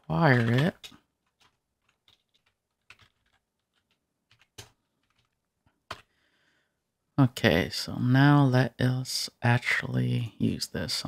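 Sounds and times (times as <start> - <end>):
computer keyboard keystrokes: 1.3 - 6.1.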